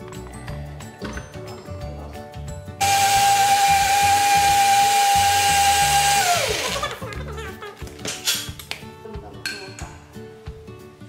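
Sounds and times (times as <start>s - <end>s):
blender blades spinning down: 2.8s - 6.9s
blender motor whining: 2.8s - 6.9s.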